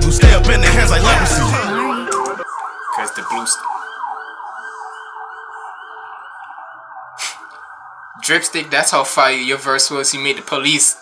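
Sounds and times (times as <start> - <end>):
police siren yelping: 0.4 - 11.0.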